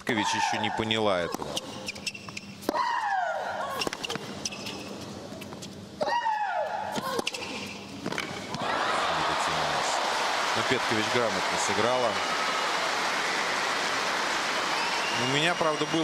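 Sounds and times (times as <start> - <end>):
player shrieking: 2.7 - 3.9, 6.0 - 7.3
crowd applause and cheering: 8.5 - 16.0.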